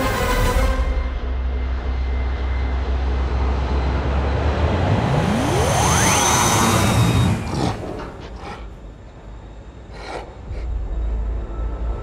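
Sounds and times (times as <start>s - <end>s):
jet whine rising in pitch: 1.4s - 8.2s.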